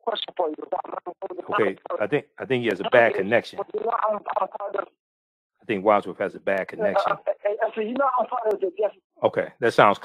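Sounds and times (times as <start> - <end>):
caller's voice over telephone: 0.0 - 5.0, 6.8 - 9.0.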